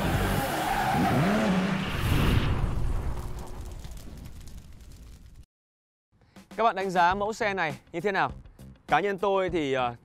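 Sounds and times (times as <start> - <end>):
engine revving: 0.0 - 2.4.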